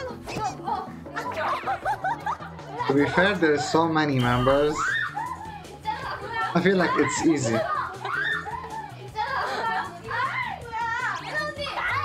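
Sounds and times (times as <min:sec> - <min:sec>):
women laughing and exclaiming: 0:00.0 - 0:03.8, 0:04.5 - 0:12.0
background music with bass line: 0:00.0 - 0:12.0.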